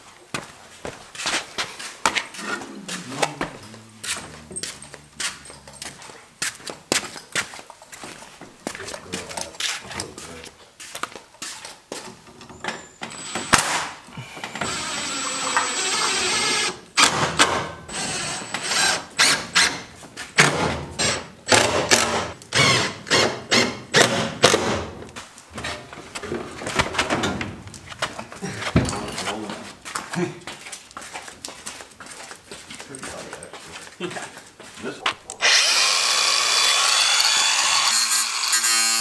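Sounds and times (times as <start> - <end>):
wood and tools clattering: 18.5 - 29.7
cordless driver running: 35.4 - 37.9.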